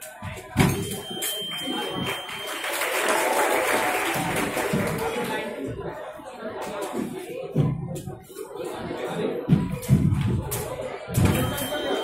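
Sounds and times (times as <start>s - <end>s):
spectators clapping: 1.2s - 5.5s.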